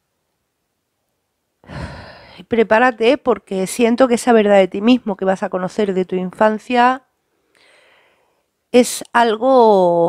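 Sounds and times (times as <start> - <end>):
woman breathing: 1.6 - 2.4, 7.3 - 8.6.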